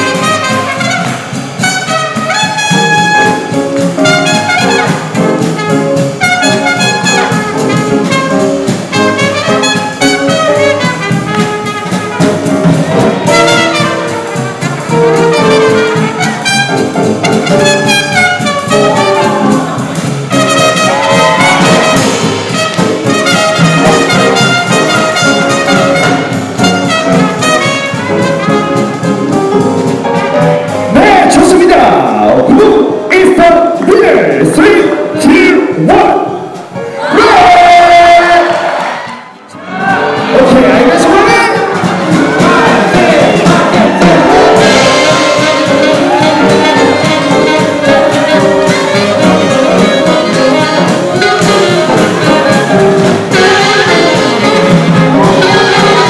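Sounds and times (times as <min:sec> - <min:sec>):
big band playing swing jazz: 0:00.0 - 0:56.0.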